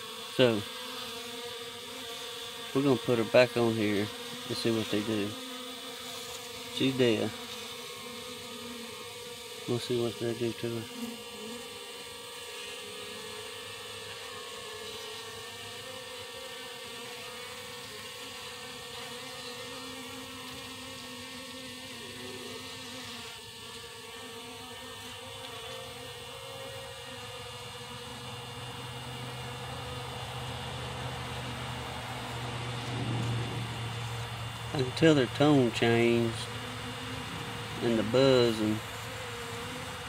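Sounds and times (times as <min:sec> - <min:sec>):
honeybee colony humming: 0:00.0 - 0:40.0.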